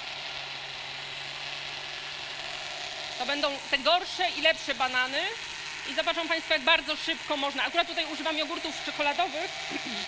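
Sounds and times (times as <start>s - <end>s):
electric blender running: 0.0s - 10.0s.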